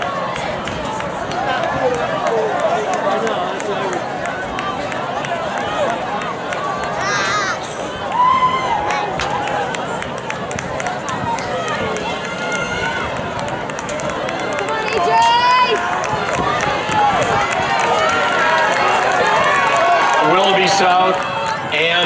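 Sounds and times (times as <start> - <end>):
crowd talking and calling out: 0.0 - 22.0.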